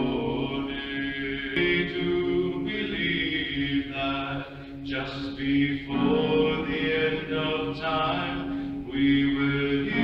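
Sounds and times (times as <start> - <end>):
men's chorus singing: 0.0 - 10.0.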